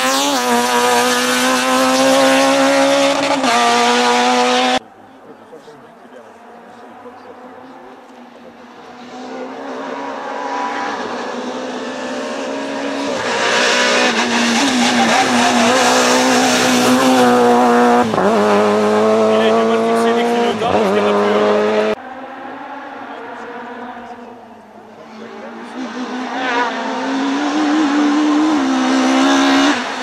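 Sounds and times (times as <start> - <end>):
rally car engine at high revs: 0.0 - 4.8, 6.3 - 30.0.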